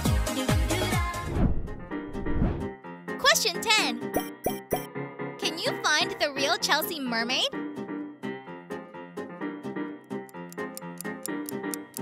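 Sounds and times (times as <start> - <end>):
children's background music: 0.0 - 12.0
high lively voice speaking: 3.2 - 4.0
pop sound effects: 4.1 - 4.9.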